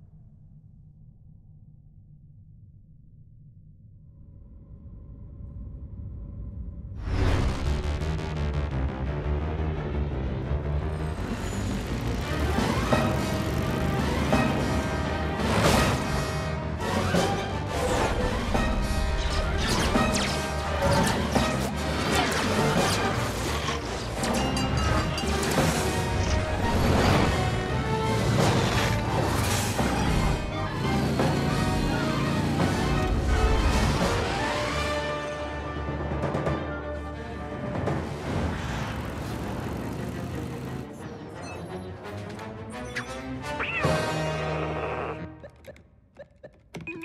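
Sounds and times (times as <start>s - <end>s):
loud film music: 6.9s - 45.8s.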